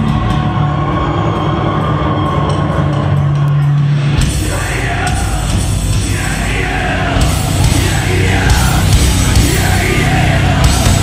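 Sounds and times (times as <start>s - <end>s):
metal band playing loud: 0.0s - 11.0s.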